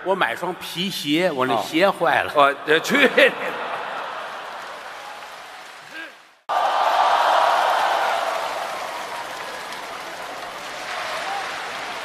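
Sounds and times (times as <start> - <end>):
audience applauding: 3.5 - 12.0.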